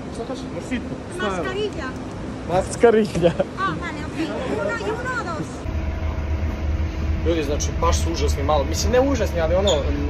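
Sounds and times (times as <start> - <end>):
bus engine rumbling: 0.0 - 10.0
faint steady hum: 3.4 - 10.0.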